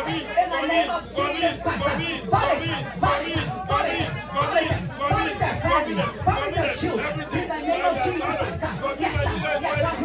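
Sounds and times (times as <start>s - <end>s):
man praying into a microphone: 0.0s - 10.0s.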